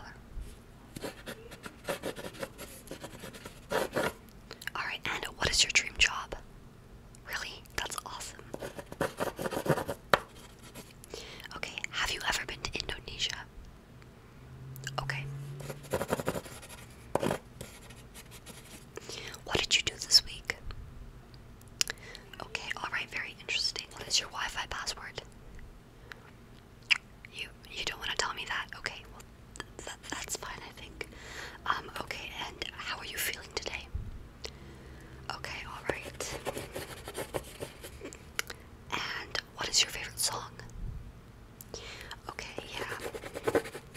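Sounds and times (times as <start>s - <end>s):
person whispering into microphone: 4.7s - 6.4s, 7.2s - 8.4s, 11.5s - 13.5s, 19.0s - 20.6s, 27.3s - 31.0s, 31.6s - 33.9s, 35.3s - 37.2s, 38.9s - 40.7s, 42.1s - 43.5s.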